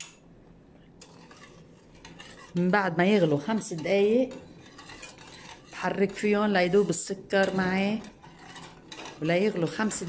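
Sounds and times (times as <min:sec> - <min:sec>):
metal spoon scraping saucepan: 0:01.0 - 0:10.0.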